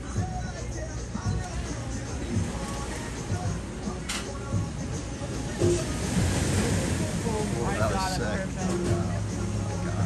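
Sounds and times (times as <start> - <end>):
background music: 0.0 - 10.0
faint voices: 1.2 - 10.0
surf washing onto shore: 1.3 - 10.0.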